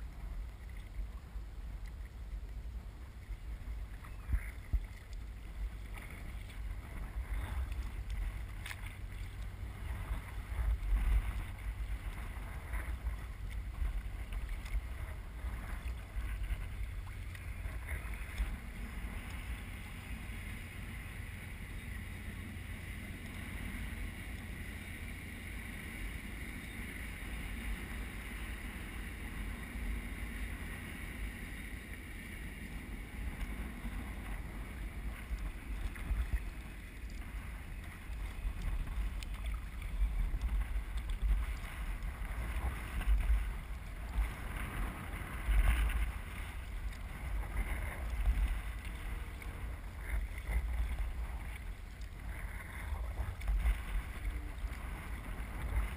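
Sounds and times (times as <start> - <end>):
faint steady hum: 0.0 - 55.9
water splashing against hull: 0.0 - 55.9
wind rumble on microphone: 0.0 - 55.9
kayak paddle strokes: 0.1 - 55.9.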